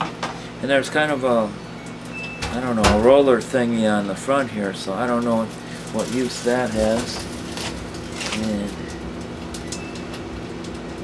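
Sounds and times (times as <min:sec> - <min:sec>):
microwave oven humming: 0:00.0 - 0:11.0.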